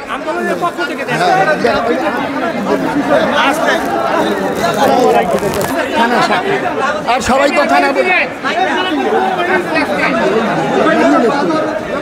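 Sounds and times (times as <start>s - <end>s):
men's voices talking over each other: 0.0s - 12.0s.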